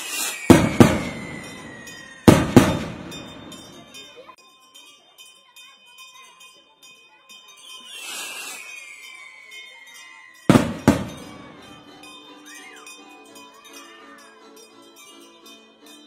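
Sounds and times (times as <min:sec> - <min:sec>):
firework bangs: 0:00.0 - 0:03.9, 0:10.5 - 0:11.8
rocket hissing and whistling: 0:00.0 - 0:03.9, 0:07.7 - 0:11.9.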